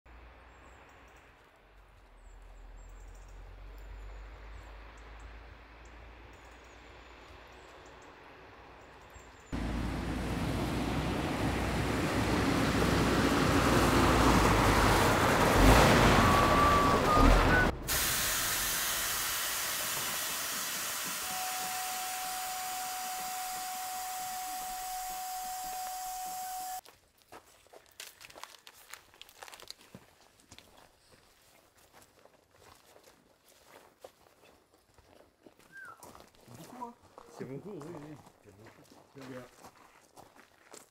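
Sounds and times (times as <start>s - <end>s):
lorry engine and road noise: 0.1s - 26.8s
loud steady hiss with whine: 17.9s - 26.8s
faint crunches and ticks: 27.2s - 31.0s.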